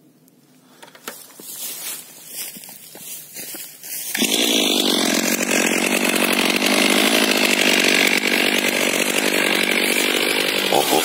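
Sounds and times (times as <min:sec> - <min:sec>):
chainsaw running at high revs: 0:04.1 - 0:11.0.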